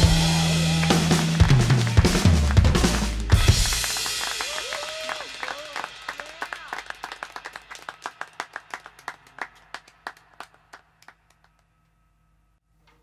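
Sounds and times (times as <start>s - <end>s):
hand claps: 0.2s - 11.8s.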